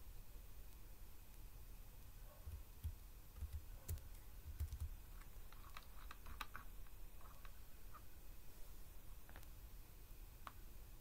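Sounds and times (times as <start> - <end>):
keyboard key clicks: 2.5 - 4.9.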